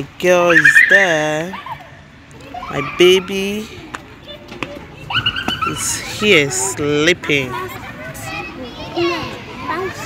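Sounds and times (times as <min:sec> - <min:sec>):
children playing and calling out: 0:00.6 - 0:10.0.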